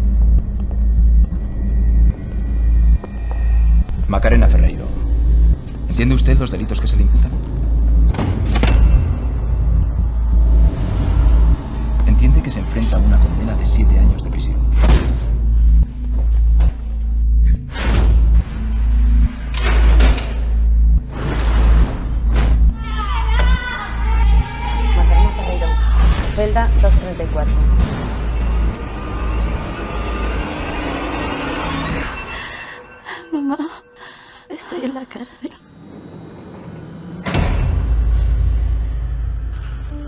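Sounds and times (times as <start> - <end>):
deep bass rumble: 0.0 - 31.4
faint rising tone: 6.7 - 14.8.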